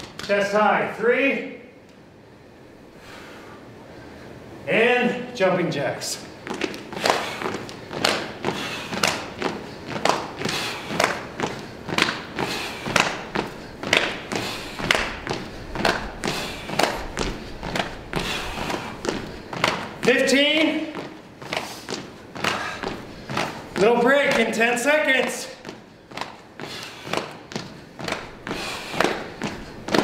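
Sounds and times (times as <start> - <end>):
sneakers thudding on gym floor: 6.4 - 30.0.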